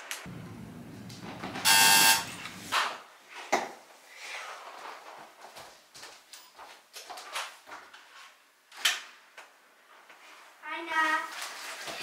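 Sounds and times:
electric door buzzer: 1.6 - 2.4.

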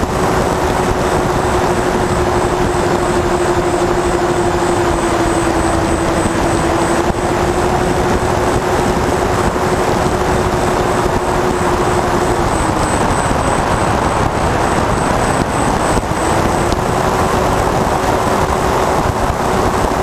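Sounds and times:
electric motors and propellers whining: 0.0 - 20.0
wind rumble on microphone: 0.0 - 20.0.

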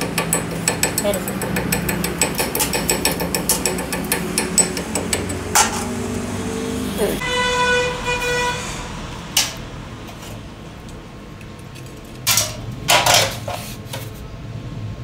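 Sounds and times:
metal clanks: 0.0 - 6.0, 11.8 - 14.1
horn-like tone: 7.2 - 9.0.

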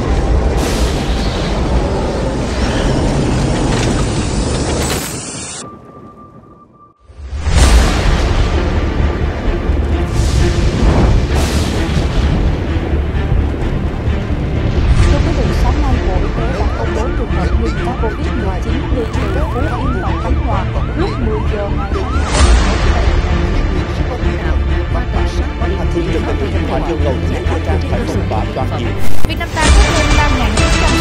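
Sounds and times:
rumbling thunder: 0.0 - 4.9, 7.1 - 16.9
rain: 0.0 - 5.7, 7.2 - 16.7
steady low rumble: 7.2 - 31.0
fast warbling siren: 16.2 - 23.4.

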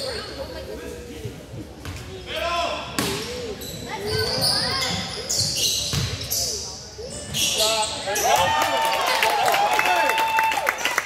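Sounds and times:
voices echoing: 0.0 - 8.9
sneakers squeaking: 2.9 - 8.5.

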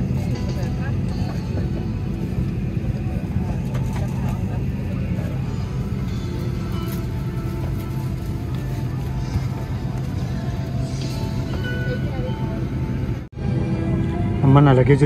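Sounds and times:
airliner cabin hum: 0.0 - 15.0
faint music: 0.0 - 15.0.

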